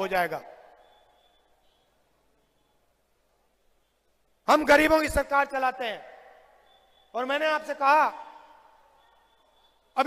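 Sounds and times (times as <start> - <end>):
man speaking over public address: 0.0 - 0.7, 4.4 - 6.4, 7.1 - 8.5.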